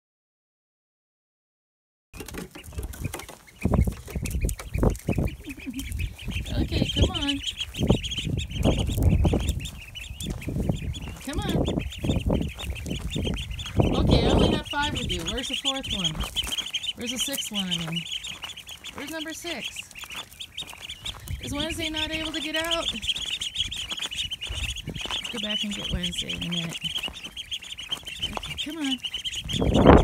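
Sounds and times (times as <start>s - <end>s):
ducklings peeping: 2.2s - 30.0s.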